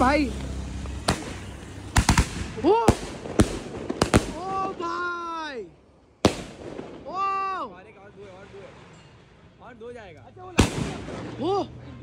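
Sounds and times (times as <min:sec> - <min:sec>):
firework bang: 0:01.0 - 0:04.8, 0:06.2 - 0:07.2, 0:10.6 - 0:11.4
person exclaiming: 0:02.6 - 0:03.0.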